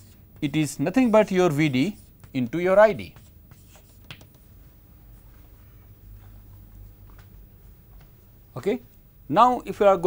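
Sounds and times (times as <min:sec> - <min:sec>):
chalk scratching on blackboard: 0:00.0 - 0:02.2, 0:03.1 - 0:04.1.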